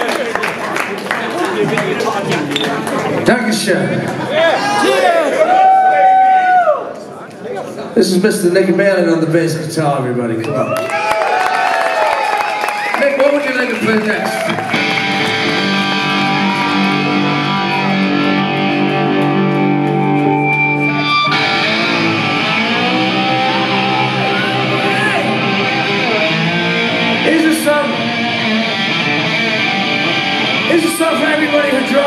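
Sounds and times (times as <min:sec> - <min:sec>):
electric guitar chords ringing: 0:14.5 - 0:32.0.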